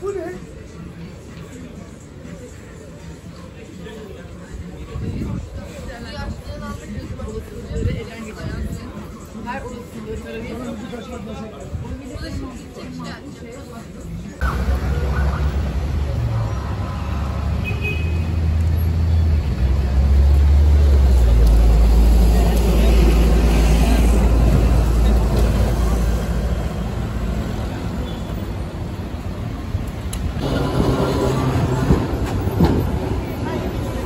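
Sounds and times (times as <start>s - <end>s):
passers-by voices: 0.0s - 34.0s
street noise: 0.0s - 34.0s
heavy vehicle engine rumble: 14.4s - 34.0s.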